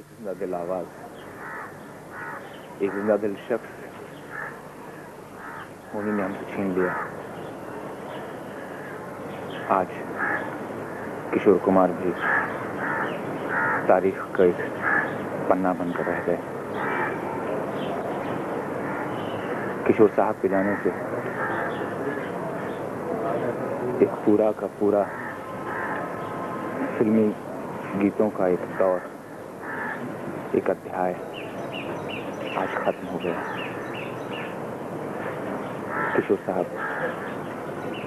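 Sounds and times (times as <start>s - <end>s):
crow cawing: 1.2s - 3.2s, 4.2s - 11.2s, 12.0s - 24.1s, 24.8s - 27.0s, 27.6s - 30.5s, 31.2s - 34.6s, 35.6s - 38.0s.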